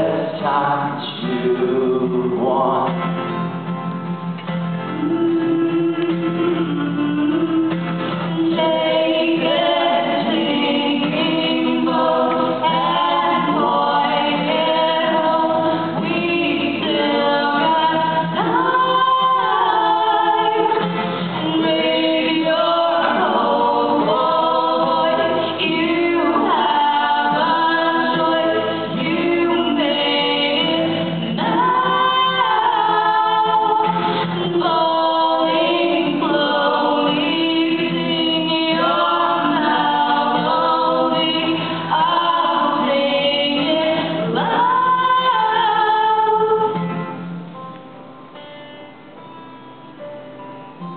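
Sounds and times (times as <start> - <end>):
woman and man singing: 0.0 - 3.5, 4.8 - 47.1
strummed acoustic guitar: 0.0 - 50.9.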